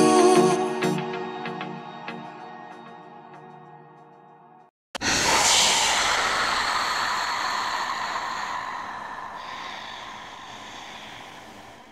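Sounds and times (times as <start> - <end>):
hissing whoosh: 5.0 - 11.9.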